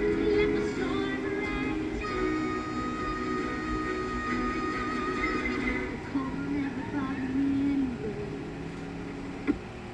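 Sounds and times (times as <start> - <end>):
light-show music: 0.0 - 8.4.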